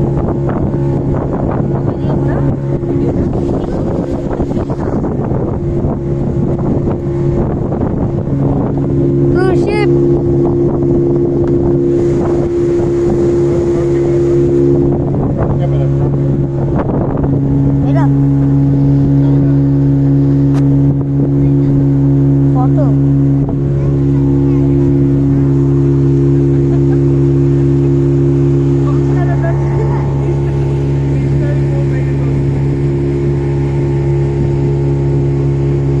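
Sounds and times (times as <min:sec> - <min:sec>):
speedboat engine droning: 0:00.0 - 0:36.0.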